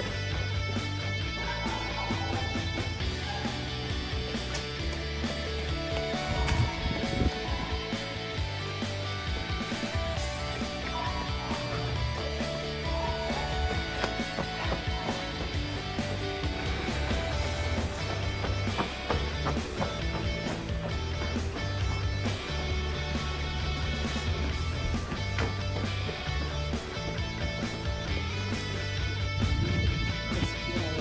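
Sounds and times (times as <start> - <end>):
guitar-led instrumental music: 0.0 - 31.0
low bass line: 0.0 - 31.0.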